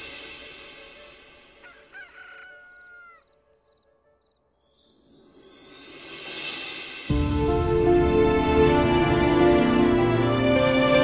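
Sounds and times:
rooster crowing: 1.6 - 3.4.

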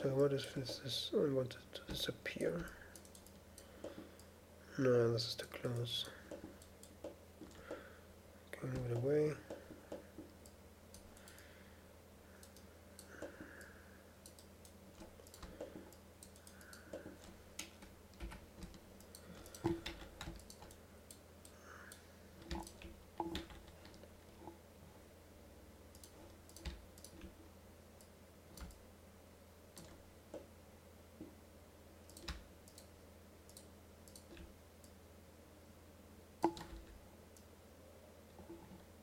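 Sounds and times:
steady low hum: 0.0 - 39.0
mouse and keyboard clicking: 12.4 - 24.0, 25.9 - 27.4, 32.1 - 32.9.

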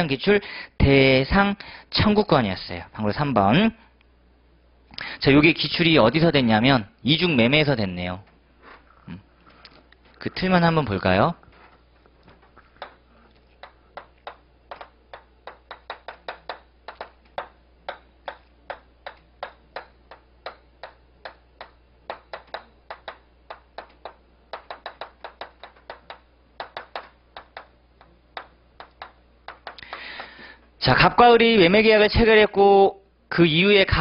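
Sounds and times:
low steady hum: 0.0 - 34.0
chalk tapping on chalkboard: 12.7 - 13.0, 13.6 - 30.4.

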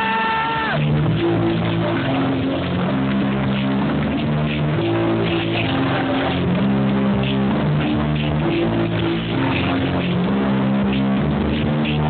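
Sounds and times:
techno music over sound system: 0.0 - 12.0.

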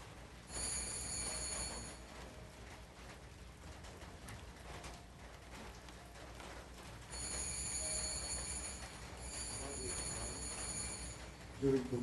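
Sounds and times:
small bell ringing: 0.5 - 2.1, 7.1 - 11.4.

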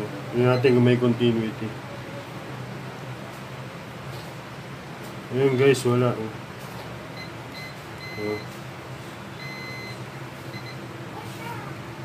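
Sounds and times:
multimeter continuity beeps: 0.5 - 0.9, 7.2 - 8.6, 9.4 - 10.8.

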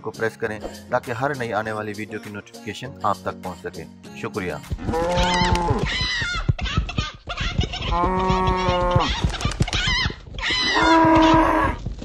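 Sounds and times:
rapid patter of knocks: 4.5 - 12.0
harsh animal cries: 4.9 - 6.1, 10.4 - 11.8.

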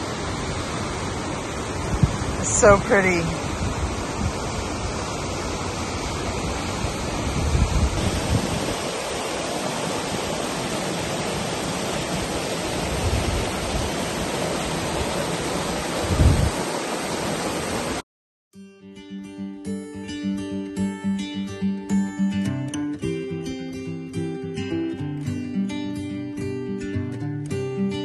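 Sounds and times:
stream cascading over rocks: 0.0 - 18.0
wind buffeting microphone: 0.5 - 17.8.

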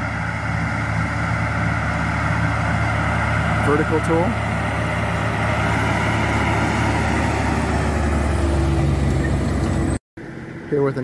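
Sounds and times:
tractor diesel engine under load: 0.0 - 11.0.

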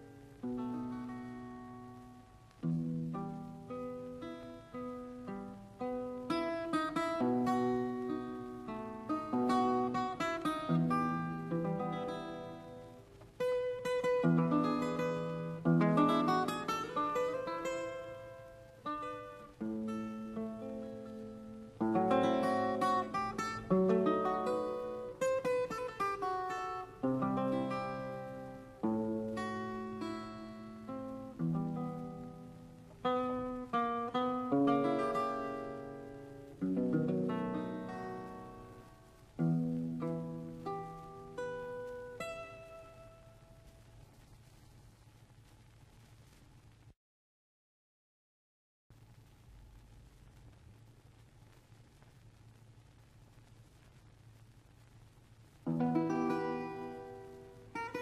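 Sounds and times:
fingerstyle guitar melody: 0.0 - 43.9, 55.6 - 58.0.

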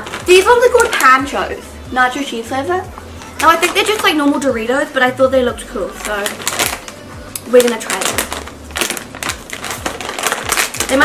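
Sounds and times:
plastic bag crinkling: 0.0 - 1.4, 3.4 - 4.3, 5.9 - 11.0.

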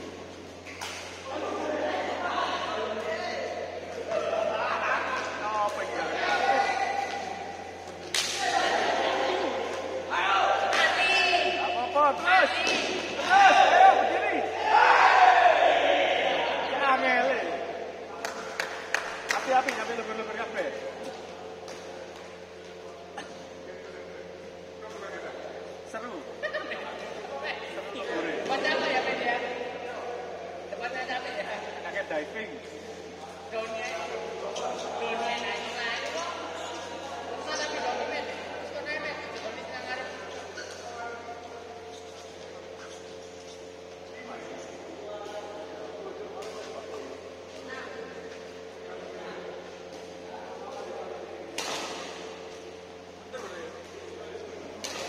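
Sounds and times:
voices: 0.0 - 55.0
racket striking shuttlecock: 51.5 - 52.3.

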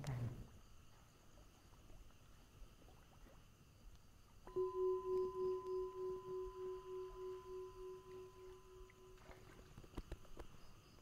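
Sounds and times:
singing bowl ringing: 4.5 - 9.5.

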